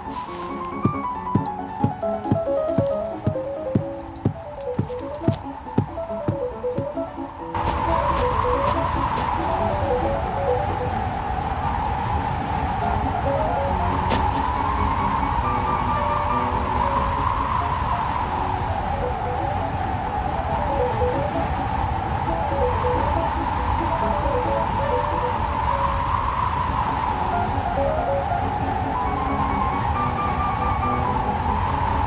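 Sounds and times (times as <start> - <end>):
music with repeating notes: 0.0 - 11.5, 12.6 - 31.6
strong wind gusting: 0.0 - 32.0.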